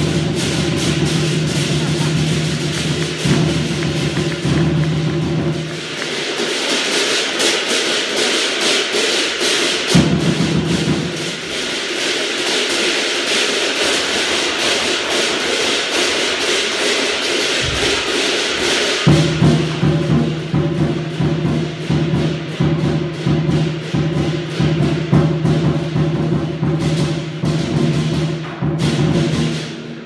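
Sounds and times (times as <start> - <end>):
cymbals clashing rapidly: 0.0 - 30.0
large drum beating: 0.0 - 30.0.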